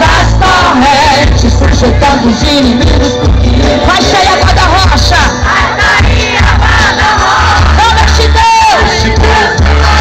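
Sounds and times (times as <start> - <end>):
crowd singing and shouting: 0.0 - 10.0
live worship band music: 0.0 - 10.0.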